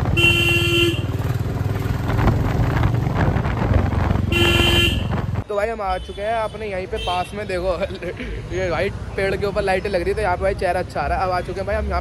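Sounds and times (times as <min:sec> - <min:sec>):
motorcycle engine running: 0:00.0 - 0:05.4
road traffic: 0:00.0 - 0:12.0
vehicle horn honk: 0:00.1 - 0:01.2, 0:04.3 - 0:05.2.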